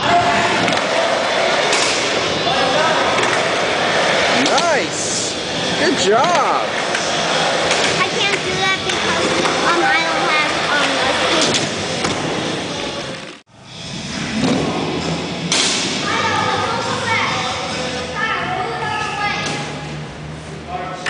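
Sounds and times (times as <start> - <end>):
echoing voices: 0.0 - 13.8, 16.0 - 21.0.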